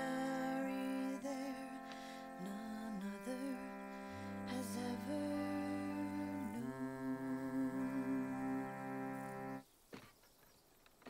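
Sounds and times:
reed organ playing held chords: 0.0s - 9.6s.

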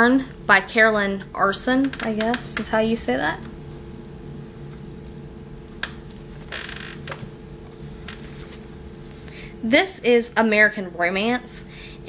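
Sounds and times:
steady low hum: 0.0s - 12.0s
paper rustling: 6.0s - 6.5s, 7.7s - 9.4s.

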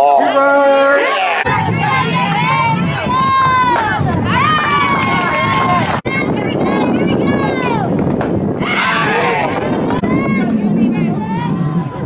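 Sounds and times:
girls chanting and shouting: 1.1s - 8.0s, 8.6s - 12.0s.

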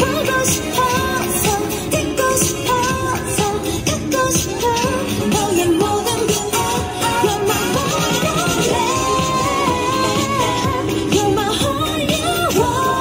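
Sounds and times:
pop dance track over speakers: 0.0s - 13.0s
sung vocal holding long notes: 0.0s - 13.0s.

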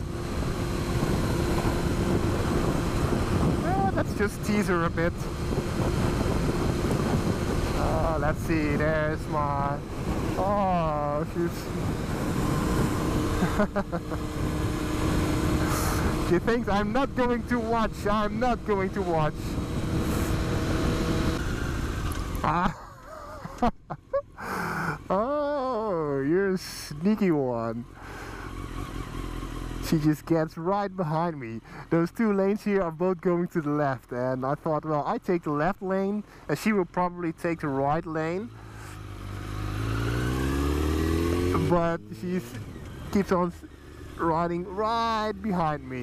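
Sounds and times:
wind rush on microphone: 0.0s - 22.1s
motorcycle engine cruising: 0.0s - 33.4s, 34.4s - 46.0s.

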